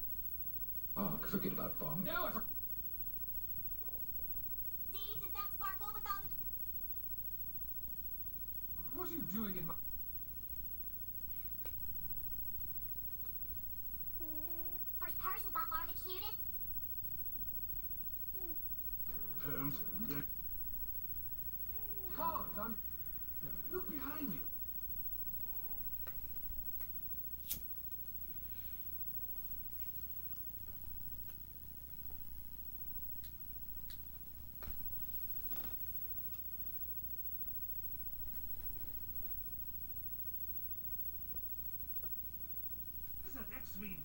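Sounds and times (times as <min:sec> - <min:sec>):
cat purring: 0:10.2 - 0:26.8.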